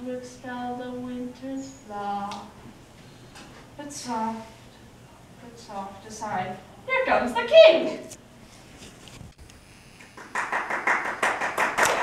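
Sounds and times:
small audience clapping: 10.0 - 12.0.

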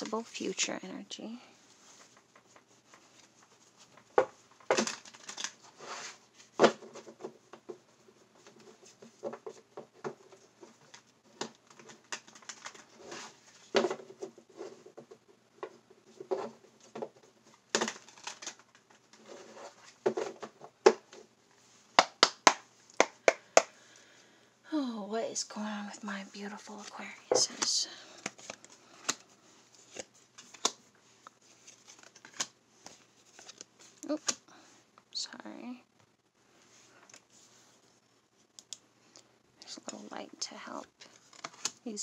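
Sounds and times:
objects moved on a desk: 8.4 - 21.8.

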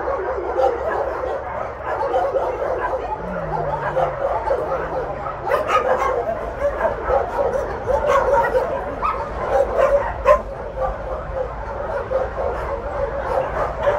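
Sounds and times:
dogs barking and yipping: 0.0 - 13.9.

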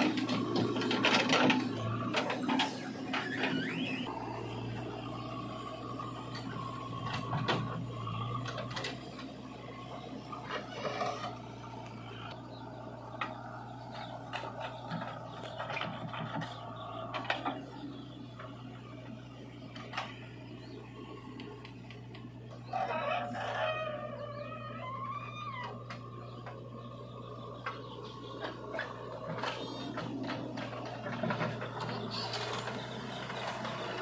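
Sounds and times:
diesel engines running: 0.0 - 34.0
rooster crowing: 22.6 - 26.1.

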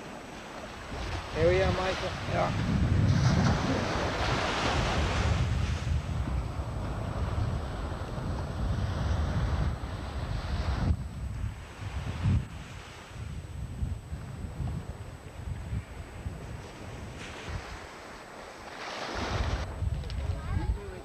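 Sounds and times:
surf washing on beach: 0.0 - 21.0
wind buffeting microphone: 0.0 - 21.0.

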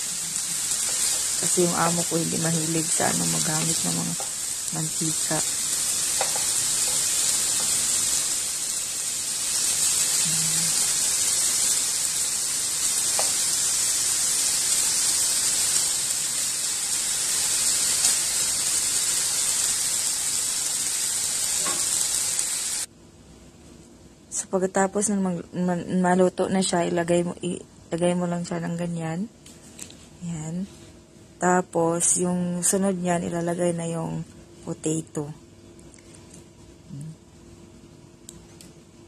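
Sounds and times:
meat patties sizzling in pan: 0.0 - 22.9.

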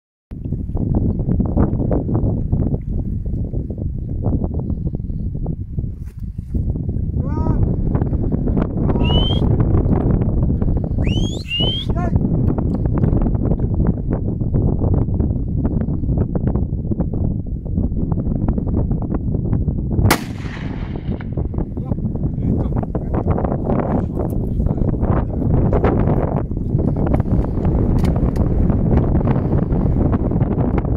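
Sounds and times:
wind buffeting microphone: 0.3 - 30.9
rising bird whistles: 9.0 - 9.5, 11.0 - 12.0.

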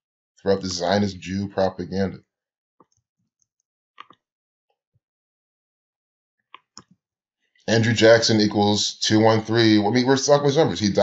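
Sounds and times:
person speaking: 0.5 - 2.2, 7.7 - 11.0.

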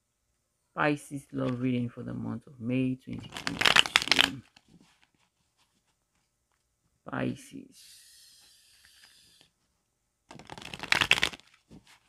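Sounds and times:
faint steady hiss: 0.0 - 10.0
cards being shuffled: 3.2 - 6.3, 10.3 - 12.0.

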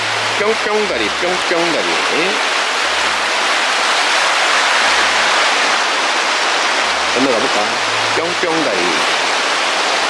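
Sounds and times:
stream water flowing over rocks: 0.0 - 10.0.

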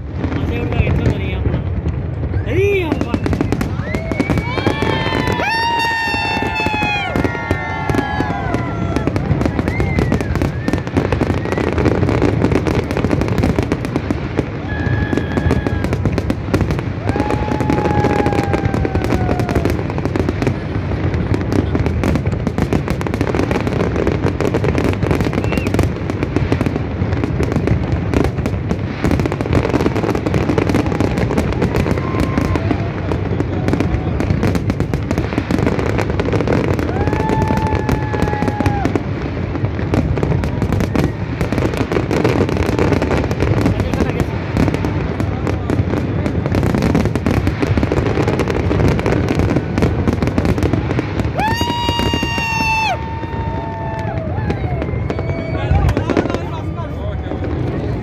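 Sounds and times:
fireworks bangs and crackling: 0.0 - 58.0.

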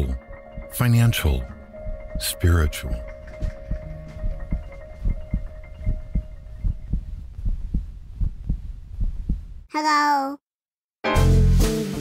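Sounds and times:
mallet percussion music: 0.0 - 6.9
heartbeat thuds: 0.4 - 0.9, 3.0 - 9.7.

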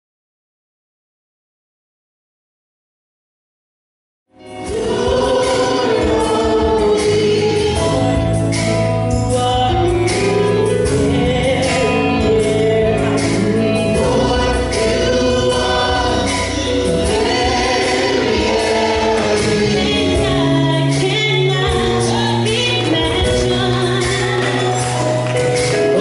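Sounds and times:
choir singing harmonies: 4.4 - 8.8, 10.9 - 26.0
lead voice singing: 4.4 - 26.0
live band: 4.4 - 26.0
drums and cymbals: 4.5 - 26.0.

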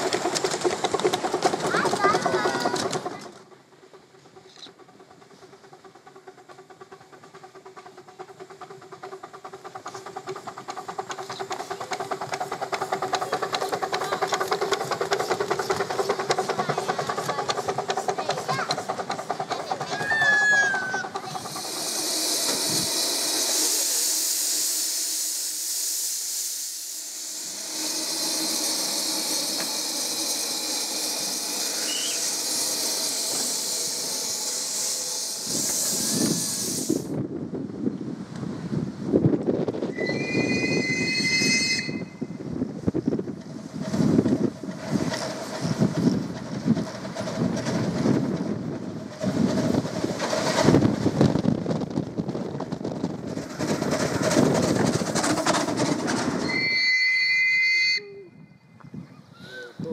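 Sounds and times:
steam hissing from locomotive: 0.0 - 37.2, 38.5 - 58.3
locomotive exhaust chuffs: 0.0 - 58.0
high two-tone whistle: 31.7 - 32.4, 39.9 - 42.3, 56.4 - 58.6.

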